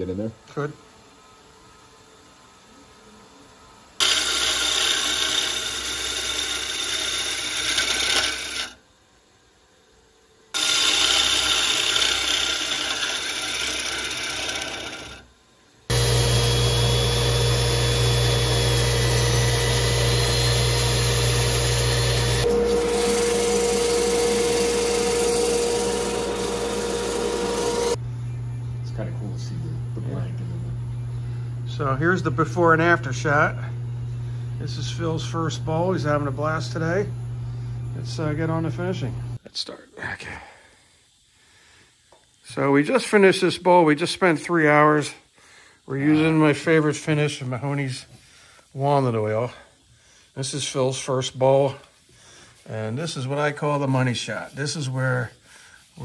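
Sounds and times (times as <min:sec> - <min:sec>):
lathe motor hum: 0:04.0 - 0:08.7, 0:10.6 - 0:15.2, 0:15.9 - 0:28.0.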